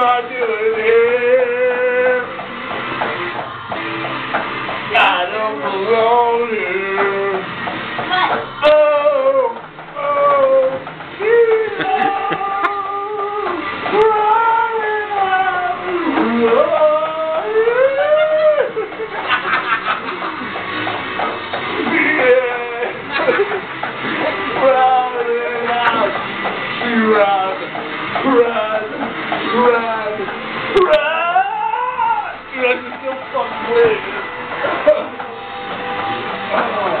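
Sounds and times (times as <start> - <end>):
man singing high held notes: 0.0 - 2.4, 4.9 - 7.6, 8.6 - 18.8, 26.8 - 34.3
low vocal sound: 8.6 - 18.8.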